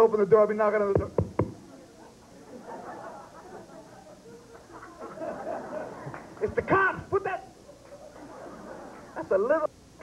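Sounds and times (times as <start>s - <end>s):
audience laughing: 2.0s - 6.6s, 7.6s - 9.4s.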